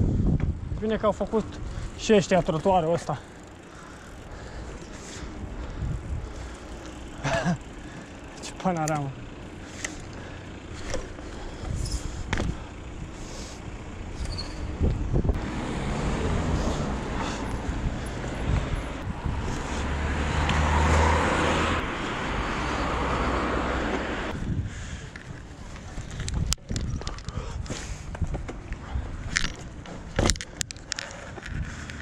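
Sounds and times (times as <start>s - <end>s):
bike clicks and rattles: 0.2s - 15.4s, 23.8s - 32.0s
bike rolling over paving stones: 0.4s - 12.7s
motor vehicle passing: 0.9s - 26.3s.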